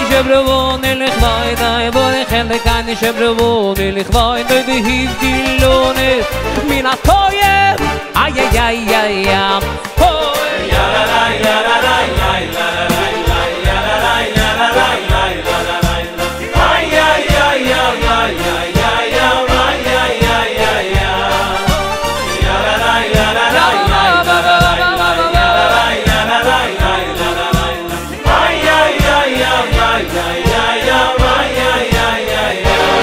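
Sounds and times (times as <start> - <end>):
male lead singer: 0.0 - 10.7, 23.4 - 28.3
electronic keyboard accompaniment: 0.0 - 33.0
instrumental backing with beat: 0.0 - 33.0
male choir singing: 4.5 - 33.0.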